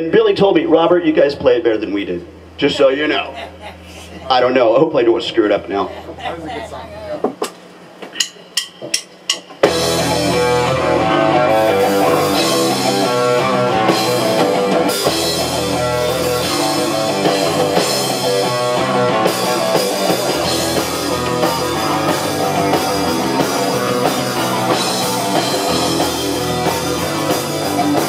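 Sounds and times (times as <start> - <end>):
punk rock band playing: 9.4 - 28.0.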